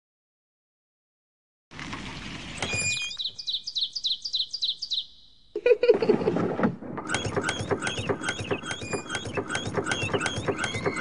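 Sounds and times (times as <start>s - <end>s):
songbird chirping: 2.0s - 5.8s.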